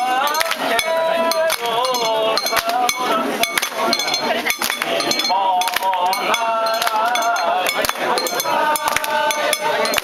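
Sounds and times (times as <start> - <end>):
crowd calling and chanting: 0.0 - 10.0.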